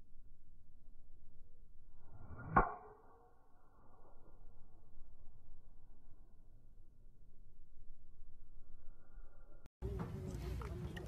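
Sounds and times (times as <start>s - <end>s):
golf club striking ball: 2.4s - 3.2s.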